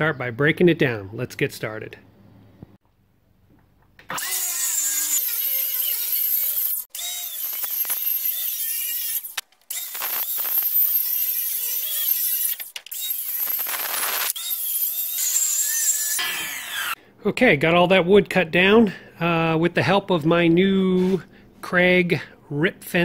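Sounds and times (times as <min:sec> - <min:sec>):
circular saw cutting board: 0:04.0 - 0:17.0.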